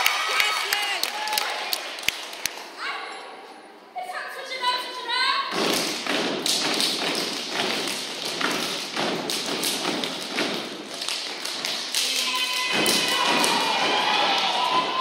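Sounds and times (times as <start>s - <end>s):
stomping and clapping: 5.5s - 15.0s
voices shouting: 12.1s - 15.0s.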